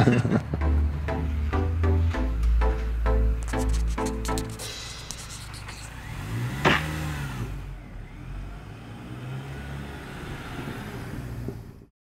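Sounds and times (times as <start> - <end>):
car engine revving: 3.6 - 11.9.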